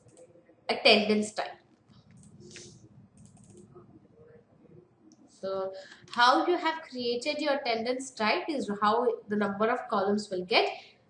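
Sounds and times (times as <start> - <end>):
keyboard keys clicking: 3.2 - 3.7.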